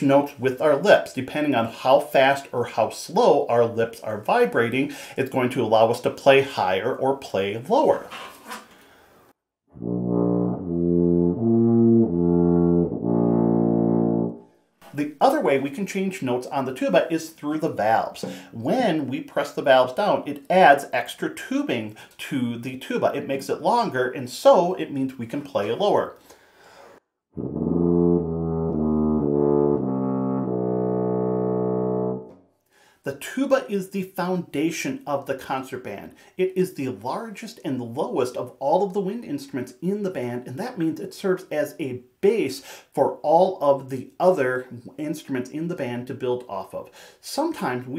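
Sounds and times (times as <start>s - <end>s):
tuba playing slurred notes: 9.7s - 14.5s, 27.4s - 32.4s.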